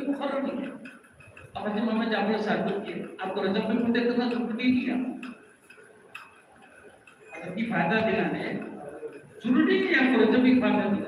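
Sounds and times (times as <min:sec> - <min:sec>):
man talking through microphone: 0:00.0 - 0:00.8, 0:01.6 - 0:05.2, 0:07.3 - 0:11.0.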